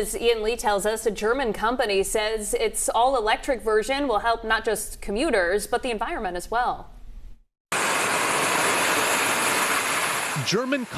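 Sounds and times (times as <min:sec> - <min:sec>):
ducted fans rushing hiss: 0:07.8 - 0:10.9.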